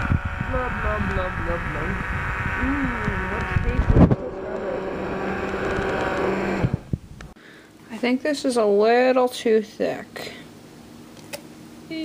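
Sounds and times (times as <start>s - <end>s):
immersion blender running: 0.0s - 7.0s.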